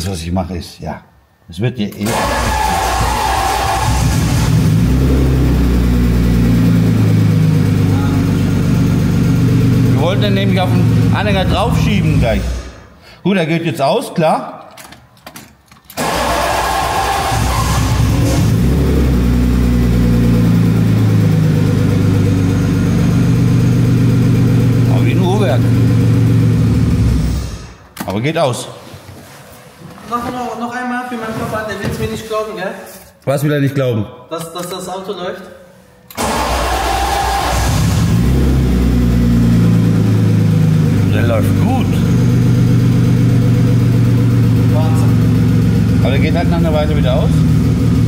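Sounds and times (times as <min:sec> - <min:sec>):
car engine starting and idling: 0:02.0 - 0:12.9, 0:15.9 - 0:27.9, 0:36.1 - 0:48.0.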